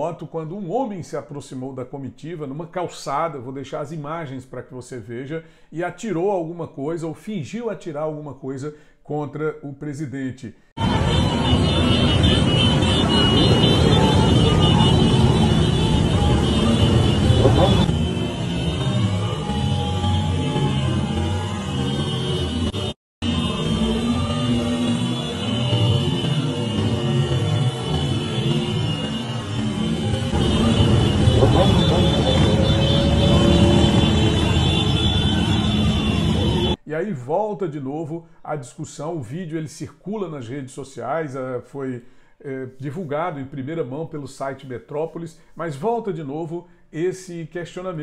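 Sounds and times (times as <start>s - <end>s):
many motorcycle engines running: 10.8s - 36.8s
people's voices: 30.4s - 34.1s.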